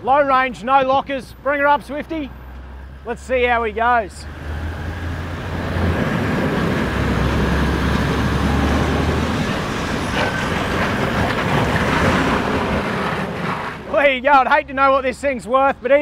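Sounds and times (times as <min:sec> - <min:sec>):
car engine working hard: 0:03.5 - 0:13.9.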